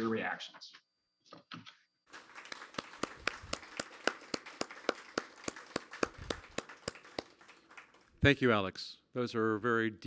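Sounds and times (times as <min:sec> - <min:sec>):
hand clapping close up: 0:02.1 - 0:08.1
faint clapping in a room: 0:02.1 - 0:08.5.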